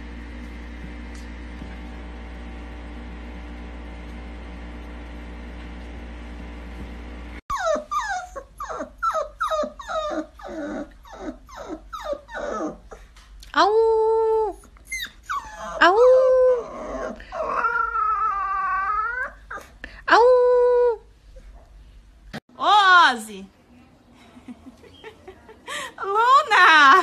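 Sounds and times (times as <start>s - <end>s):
puppy howling: 7.5s - 12.8s, 14.2s - 19.6s
puppy yipping: 7.5s - 12.8s, 14.8s - 15.7s.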